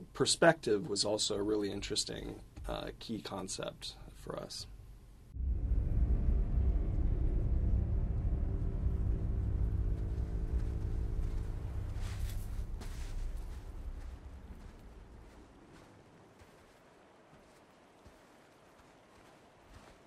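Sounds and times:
deep rumble: 0:05.3 - 0:15.8
dark low music drone: 0:05.4 - 0:15.5
soft footfalls on sand: 0:09.8 - 0:20.0.

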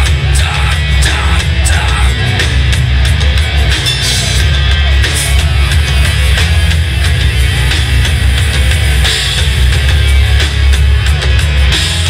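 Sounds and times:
bass guitar: 0:00.0 - 0:12.0
distorted electric guitars: 0:00.0 - 0:12.0
drum kit beat: 0:00.0 - 0:12.0.

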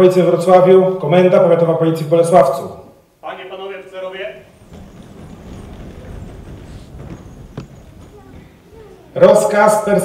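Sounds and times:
rustling: 0:04.1 - 0:09.4
light knocks: 0:04.5 - 0:08.9.

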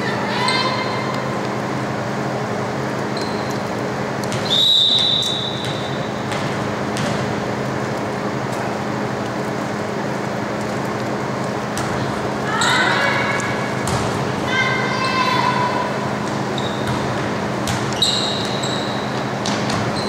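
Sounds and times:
short rising squeaks: 0:03.1 - 0:03.7, 0:16.5 - 0:17.0, 0:17.9 - 0:19.3
volleyball thumps: 0:04.2 - 0:07.5, 0:11.6 - 0:12.1, 0:13.7 - 0:14.4, 0:16.2 - 0:18.6, 0:19.3 - 0:20.0
referee's whistle: 0:04.4 - 0:06.2, 0:18.0 - 0:19.1.

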